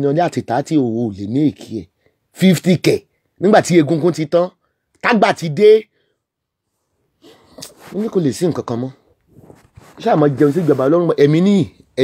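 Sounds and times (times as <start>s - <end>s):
breathy noise: 7.0s - 8.1s.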